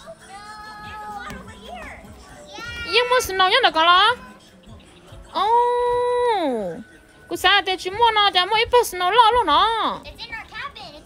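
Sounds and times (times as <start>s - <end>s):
children calling out at play: 0.0s - 4.6s.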